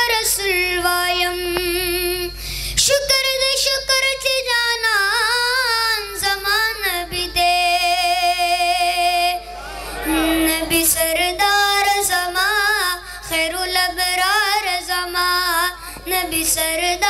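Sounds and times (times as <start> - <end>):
boy singing into a microphone: 0.0 - 17.0.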